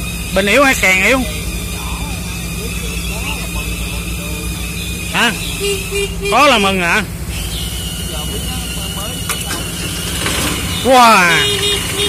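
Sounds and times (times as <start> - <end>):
diesel tractor engine idling: 0.0 - 12.0.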